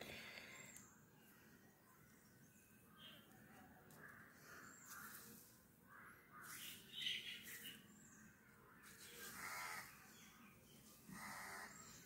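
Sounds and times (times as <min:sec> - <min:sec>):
crows cawing faintly: 0:01.3 - 0:07.2, 0:08.4 - 0:10.4, 0:11.0 - 0:12.0.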